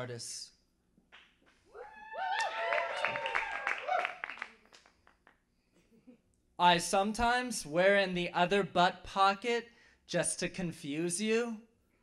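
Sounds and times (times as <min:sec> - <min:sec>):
people clapping: 0:01.1 - 0:05.4
audience cheering: 0:01.7 - 0:04.6.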